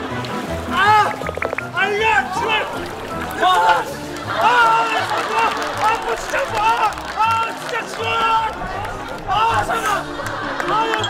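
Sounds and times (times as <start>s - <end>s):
background music: 0.0s - 11.0s
men shouting encouragement: 1.8s - 11.0s.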